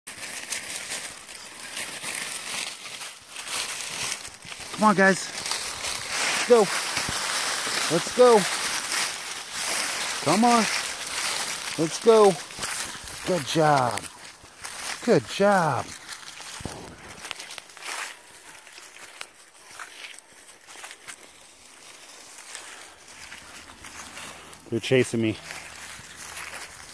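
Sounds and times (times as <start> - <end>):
footsteps crunching dry leaves: 0.1 - 26.9.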